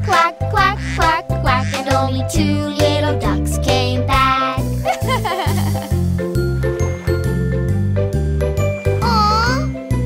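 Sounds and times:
children's song instrumental backing: 0.0s - 10.0s.

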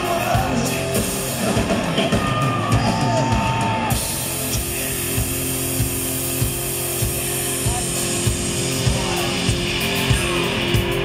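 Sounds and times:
steady drum beat: 0.0s - 11.0s
distorted electric guitar chord: 4.0s - 11.0s.

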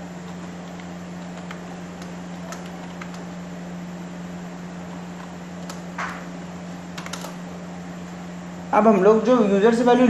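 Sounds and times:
steady low hum: 0.0s - 10.0s
computer keyboard keystrokes: 7.0s - 7.4s.

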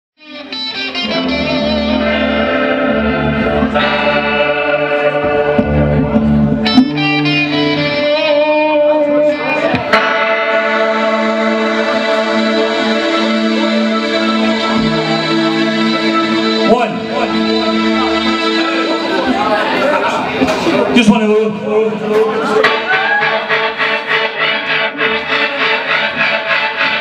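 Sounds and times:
punk band playing: 0.2s - 27.0s
sharp hits: 9.7s - 19.1s.

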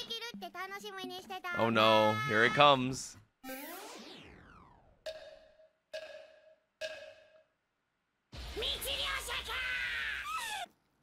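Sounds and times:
wood-block-like knocks: 5.0s - 7.5s.

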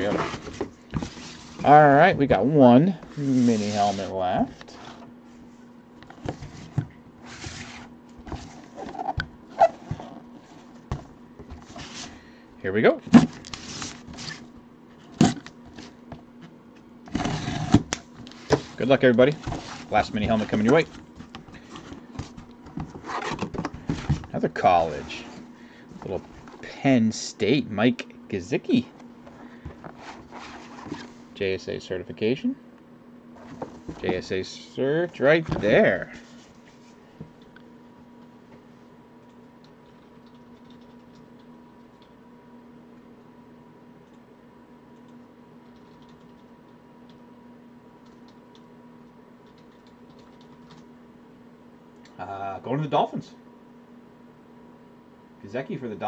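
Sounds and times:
cardboard scraping rustle: 0.0s - 1.8s, 3.0s - 5.0s, 17.1s - 21.0s, 29.9s - 31.2s
low electrical hum: 0.0s - 56.0s.

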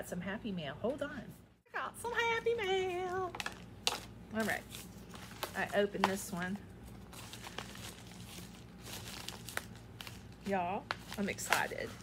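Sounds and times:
packaging crinkling: 3.1s - 6.0s, 6.8s - 12.0s.

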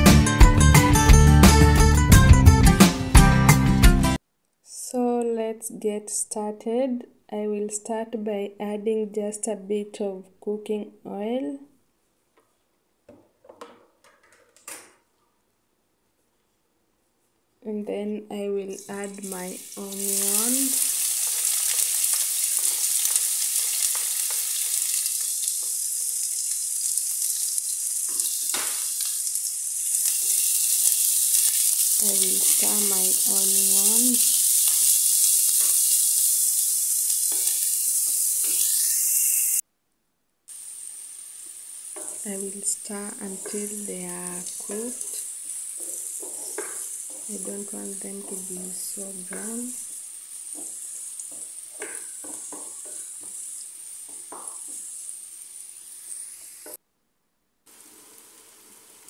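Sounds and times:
onions sizzling in oil: 18.8s - 39.6s, 40.5s - 56.8s, 57.7s - 59.0s
wooden spoon stirring: 43.3s - 53.5s.

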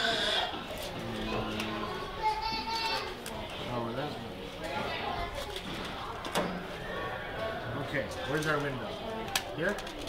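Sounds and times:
soft murmuring voices: 0.0s - 10.0s.

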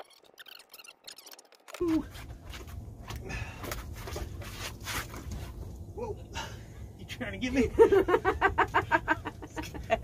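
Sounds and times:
steady low rumble: 2.0s - 10.0s.

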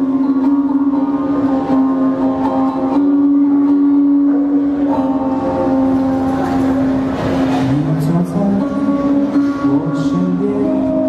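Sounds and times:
acoustic guitar: 0.0s - 11.0s
man singing: 7.6s - 11.0s.

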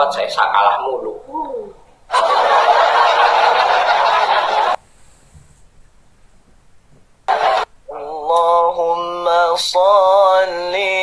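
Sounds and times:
breathy hiss: 4.8s - 5.6s
man chanting: 7.9s - 11.0s.

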